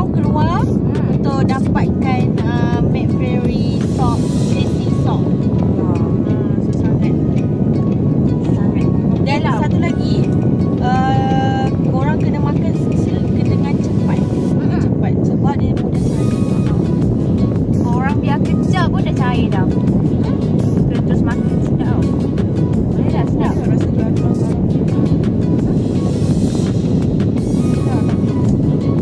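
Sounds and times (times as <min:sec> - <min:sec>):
car air conditioning blower: 0:00.0 - 0:29.0.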